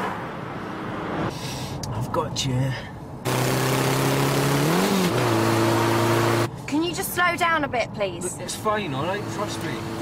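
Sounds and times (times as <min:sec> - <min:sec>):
road noise: 0:00.0 - 0:10.0.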